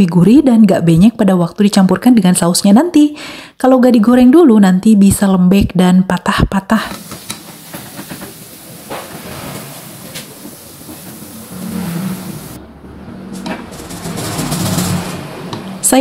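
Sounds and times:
sausage sizzling in frying oil: 7.0 - 12.6.

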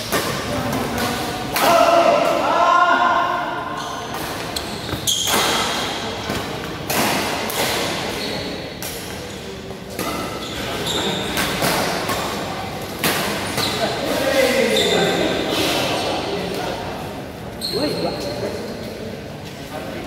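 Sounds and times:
rackets hitting shuttlecock: 0.0 - 2.4, 4.1 - 9.3
busy hall background noise: 0.0 - 20.0.

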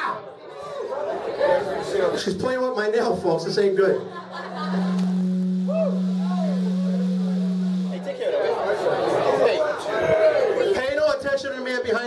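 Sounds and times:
crowd chatter: 0.0 - 2.4, 3.8 - 10.9
low hum: 4.0 - 8.4.

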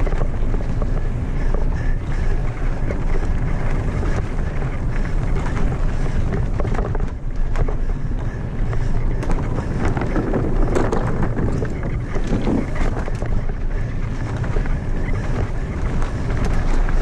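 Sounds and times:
bike rattling and clicking: 0.0 - 17.0
tyres rolling on wooden planks: 0.0 - 17.0
tyres rumbling on dirt: 0.0 - 17.0
wind buffeting microphone: 0.0 - 17.0.

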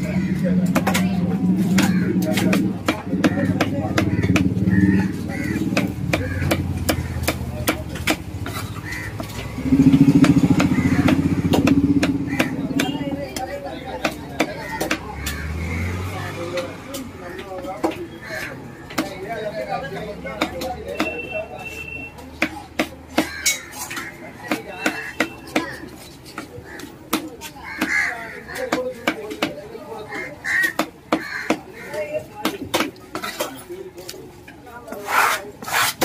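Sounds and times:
knife chopping on wooden block: 0.6 - 15.6, 20.3 - 21.3, 22.3 - 29.6, 30.5 - 31.7, 32.4 - 33.6.

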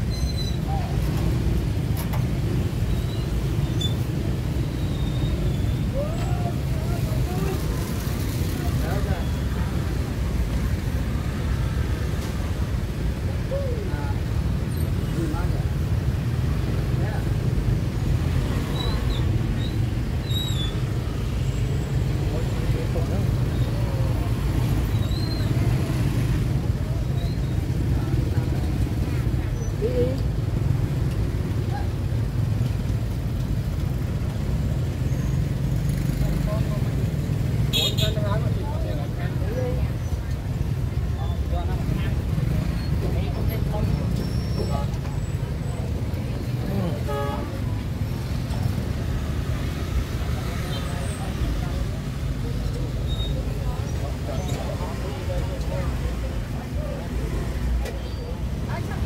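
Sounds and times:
traffic and motorbikes rumble: 0.0 - 59.0
voices of vendors and shoppers: 0.0 - 59.0.

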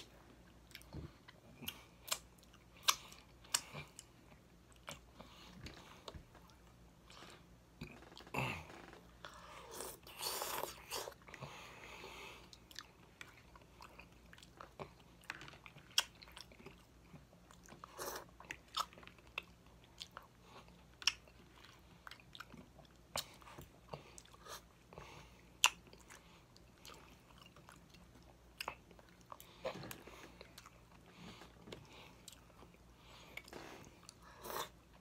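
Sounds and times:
person chewing: 0.0 - 35.0.

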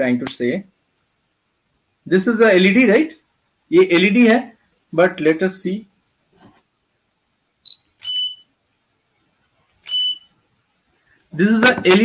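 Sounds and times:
short electronic beeps: 7.6 - 8.5, 9.8 - 10.3.

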